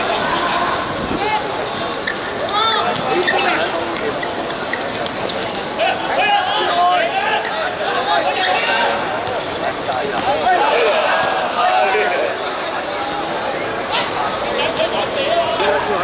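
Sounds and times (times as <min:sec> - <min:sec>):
voices calling out and talking: 0:00.0 - 0:16.0.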